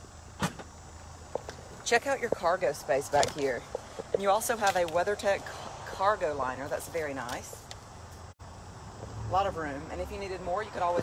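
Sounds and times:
low outdoor hum: 0.0s - 11.0s.

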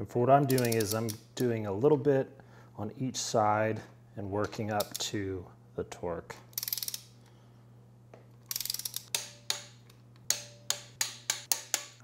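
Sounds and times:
torque wrench ratchet clicking: 0.5s - 1.2s, 6.5s - 7.1s, 8.5s - 9.7s.

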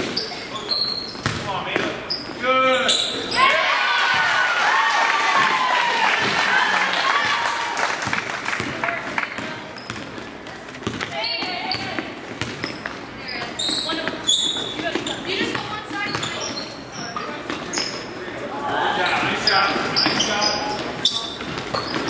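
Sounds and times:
sneaker squeaks: 0.0s - 3.6s, 9.2s - 18.4s, 19.0s - 22.0s
basketball bouncing on wooden floor: 1.2s - 1.9s, 8.6s - 16.6s.

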